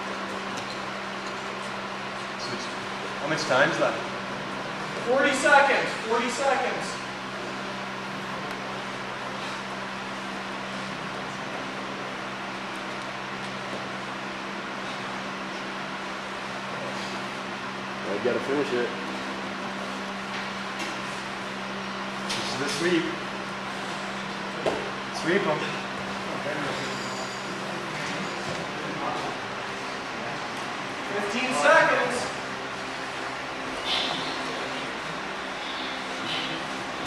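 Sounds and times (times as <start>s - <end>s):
low even hum: 0.0s - 37.0s.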